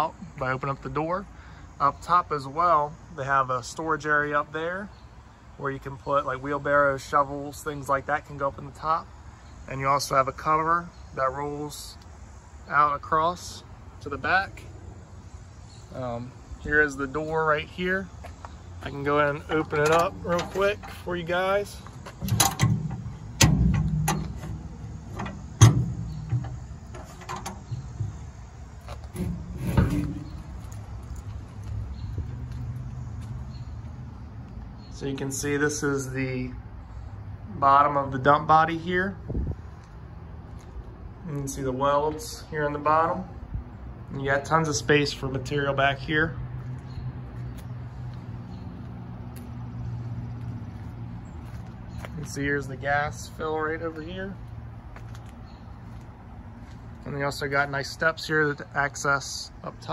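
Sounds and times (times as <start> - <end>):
low mechanical hum: 11.9 - 35.8
metal door latch clicks and clunks: 19.5 - 21.0, 22.2 - 30.6.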